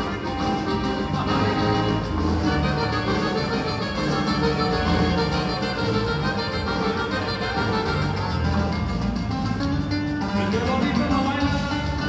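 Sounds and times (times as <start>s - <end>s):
band playing dance music: 0.0s - 12.0s.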